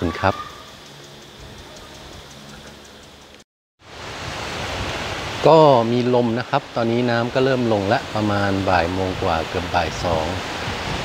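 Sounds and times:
faint outdoor background hiss: 0.0s - 11.0s
wind blowing on microphone: 3.9s - 11.0s.

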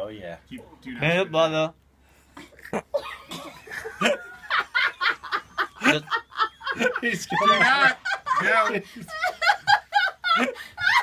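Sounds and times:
person snickering laughter: 2.6s - 11.0s.

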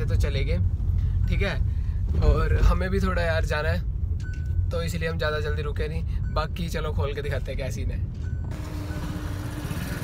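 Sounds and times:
street traffic noise: 0.0s - 10.0s
motorcycle idling: 8.5s - 10.0s.

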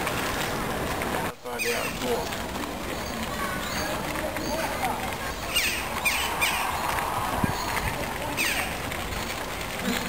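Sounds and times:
outdoor background noise: 0.0s - 10.0s
small birds chirping: 1.3s - 9.4s.

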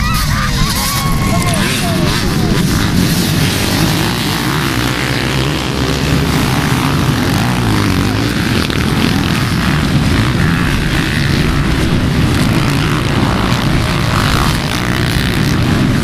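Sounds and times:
dirt bike engines droning: 0.0s - 16.0s.

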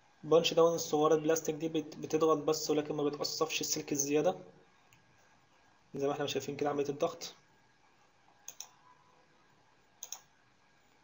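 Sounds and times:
computer mouse click: 8.4s - 8.8s, 10.0s - 10.3s.

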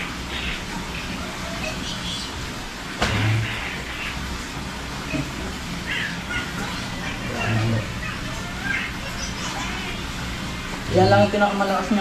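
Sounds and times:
steady low hum: 0.0s - 12.0s
sudden thump: 3.0s - 3.4s.

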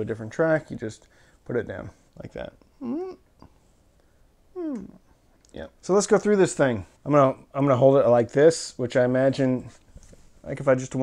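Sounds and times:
man humming mm-hmm: 2.7s - 3.6s, 4.5s - 5.1s.

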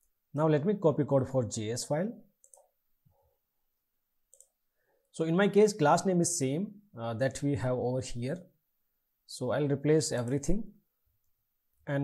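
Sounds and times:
computer mouse clicks: 2.4s - 2.8s, 4.3s - 4.6s.

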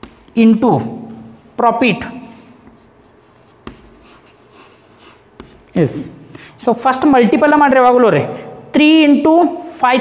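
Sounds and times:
chalk scratching on blackboard: 0.0s - 0.4s, 2.6s - 6.0s
chalk tap: 0.0s - 0.4s, 2.6s - 5.9s.

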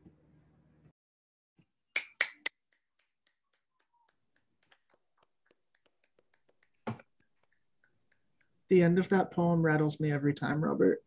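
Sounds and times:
finger snaps: 2.0s - 8.6s.

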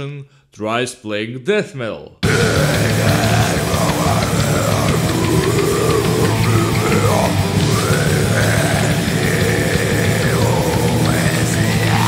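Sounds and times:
distorted guitars: 2.2s - 12.0s
drums: 2.2s - 12.0s
man growling vocals: 2.2s - 12.0s.

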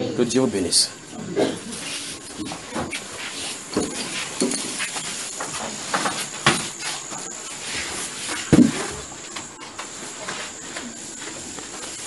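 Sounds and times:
steady hiss: 0.2s - 12.0s.

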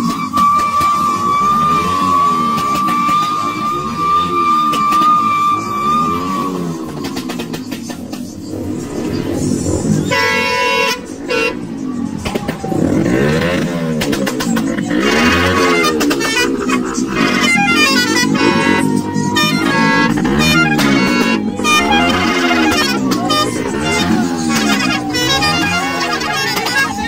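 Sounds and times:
multi-tone air horn: 0.0s - 12.0s, 14.8s - 27.0s
motorcycle engine revving: 0.0s - 27.0s.

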